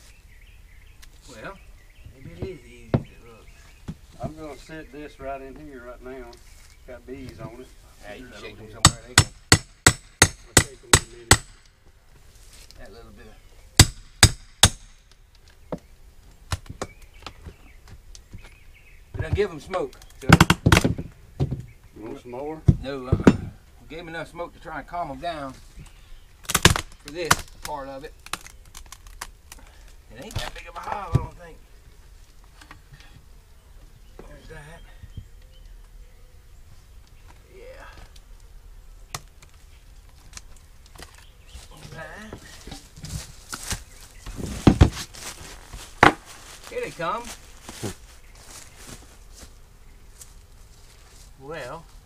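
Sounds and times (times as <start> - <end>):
heavy thumps: 2.0 - 4.5, 22.6 - 23.6, 41.8 - 48.0
wooden board knocking: 2.4 - 3.2
wood cracking: 25.8 - 31.4, 37.0 - 48.6.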